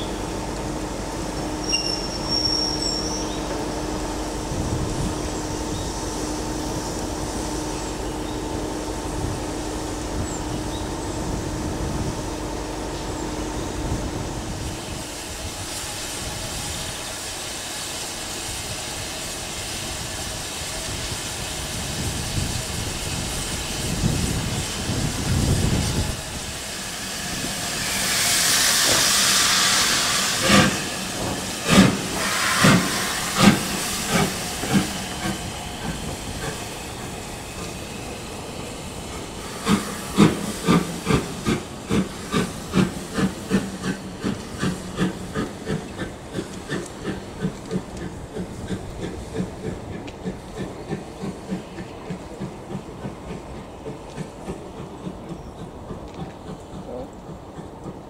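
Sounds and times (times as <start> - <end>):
loud rush of steam: 0.0 - 58.0
steam locomotive exhaust beats: 0.0 - 58.0
steam locomotive hissing steam: 0.0 - 58.0.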